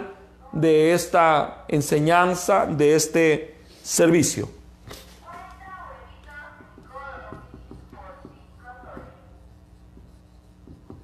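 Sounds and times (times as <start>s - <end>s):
marker tip tapping: 6.5s - 9.2s, 9.8s - 11.0s
marker squeaking on whiteboard: 6.6s - 11.0s.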